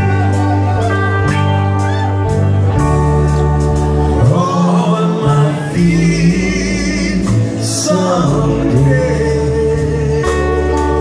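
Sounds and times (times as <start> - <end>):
live rock band playing: 0.0 - 11.0
person singing: 3.0 - 11.0.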